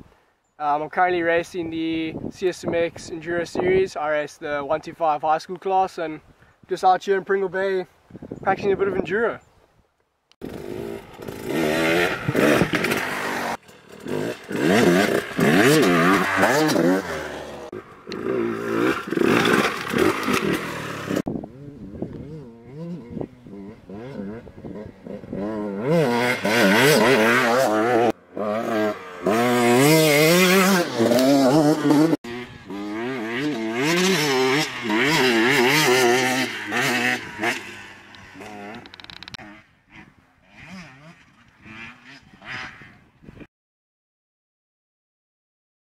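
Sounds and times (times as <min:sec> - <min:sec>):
dirt bike engine revving: 0:10.4 - 0:43.0.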